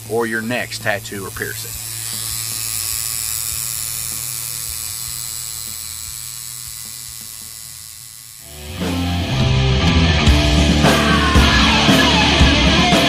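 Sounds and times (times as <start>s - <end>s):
electric tattoo machine buzzing: 0.0s - 13.0s
heavy metal guitar music: 8.4s - 13.0s.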